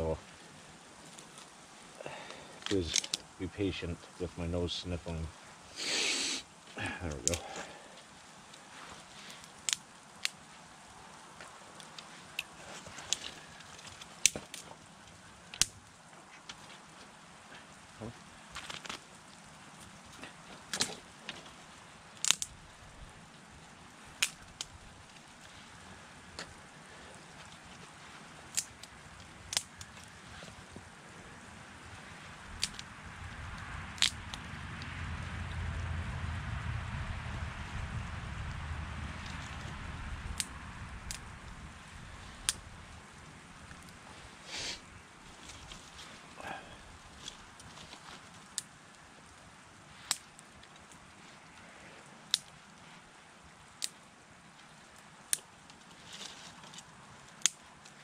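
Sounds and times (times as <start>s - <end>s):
sticks snapping: 2.9s - 3.3s, 7.2s - 7.6s, 9.4s - 10.4s, 11.7s - 14.7s, 20.2s - 21.4s, 22.2s - 22.6s, 24.2s - 25.3s, 28.2s - 30.2s, 32.6s - 32.9s, 34.0s - 34.5s, 50.1s - 51.0s, 52.3s - 52.6s, 55.3s - 55.8s, 56.6s - 58.0s
vehicle passing low rumble: 32.4s - 42.2s.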